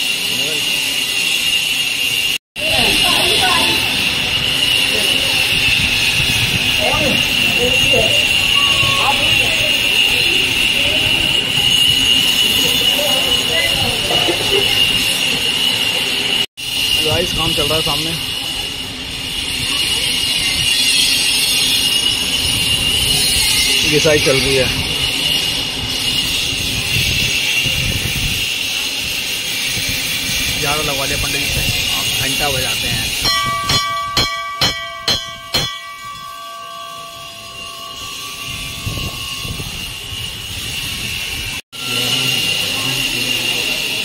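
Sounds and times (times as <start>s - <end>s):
floor grinding machine whining: 0.0s - 44.0s
brass bell ringing: 1.0s - 16.4s, 31.8s - 44.0s.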